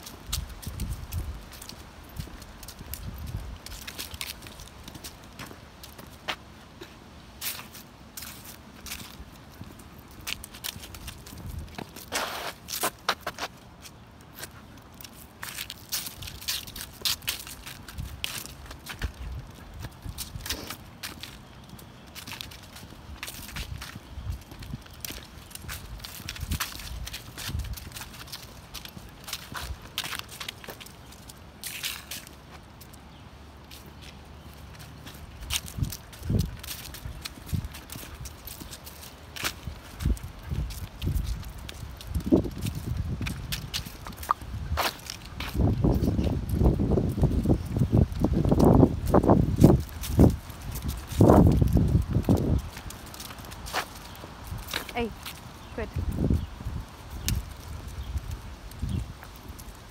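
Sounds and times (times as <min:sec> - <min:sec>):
footsteps crunching dry leaves: 0:00.0 - 0:59.9.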